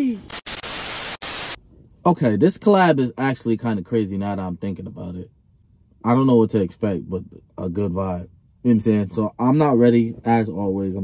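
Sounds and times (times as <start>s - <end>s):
static hiss burst: 0.0s - 1.6s.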